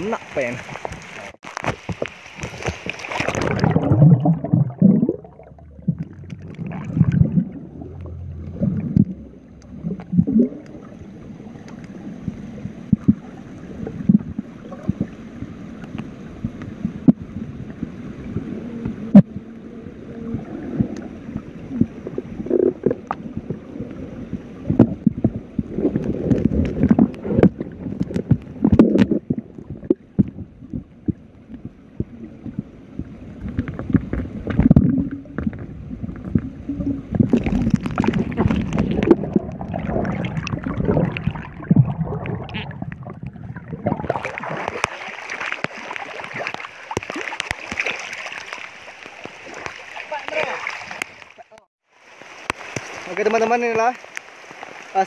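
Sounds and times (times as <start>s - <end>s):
rain falling on a river: 0.0s - 3.8s, 44.5s - 55.0s
muffled underwater rumbling and gurgling: 0.0s - 51.7s
underwater knocks and clicks: 0.7s - 10.9s, 11.6s - 15.2s, 15.8s - 19.5s, 20.3s - 51.7s.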